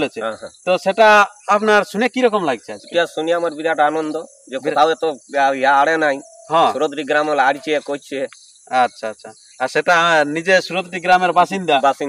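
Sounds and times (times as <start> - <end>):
insects droning: 0.0 - 12.0
man talking: 0.0 - 12.0.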